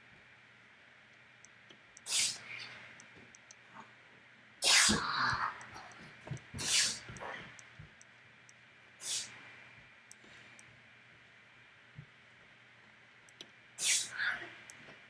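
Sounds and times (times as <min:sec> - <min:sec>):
person sneezing: 0:02.1 - 0:02.5, 0:04.6 - 0:05.3, 0:06.6 - 0:07.2, 0:09.0 - 0:09.3, 0:13.8 - 0:14.2
faint clicks: 0:13.2 - 0:13.6.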